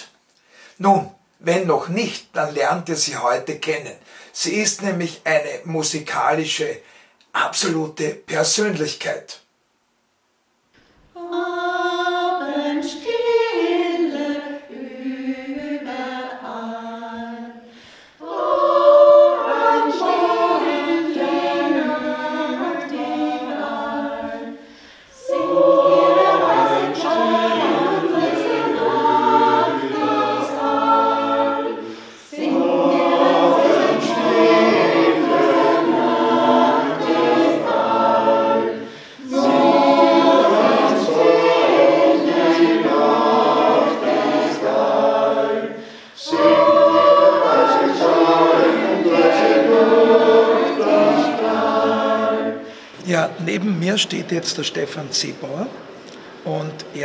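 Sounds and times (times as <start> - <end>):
mixed choir singing: 11.2 - 52.9.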